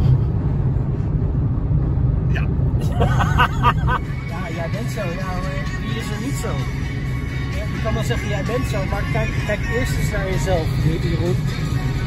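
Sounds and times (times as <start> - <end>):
car cabin road and engine rumble: 0.0 - 12.0.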